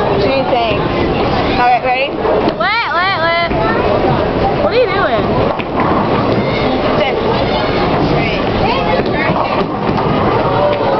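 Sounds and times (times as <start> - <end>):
overlapping voices and chatter: 0.0 - 10.9.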